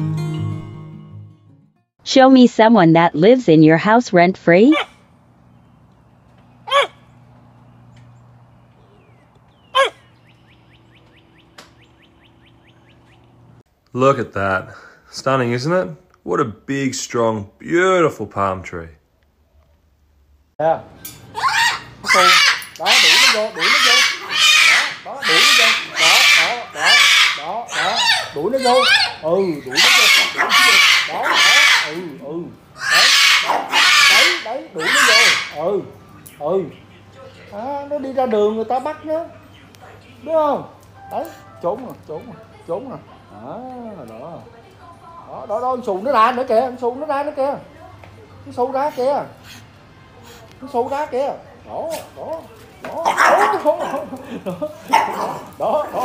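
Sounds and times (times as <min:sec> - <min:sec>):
puppy barking: 0:04.7 - 0:05.0, 0:06.6 - 0:07.1, 0:09.7 - 0:10.0, 0:21.4 - 0:32.0, 0:32.8 - 0:35.6, 0:53.0 - 0:54.2, 0:54.8 - 0:56.0
lower wavering bird calls: 0:04.8 - 0:13.6, 0:21.0 - 0:37.6
cockatoo screeching harshly: 0:06.7 - 0:07.0, 0:21.3 - 0:35.7.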